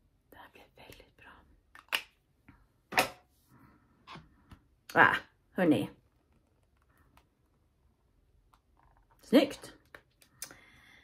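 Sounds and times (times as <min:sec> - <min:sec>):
woman whispering: 0:00.3 - 0:01.6.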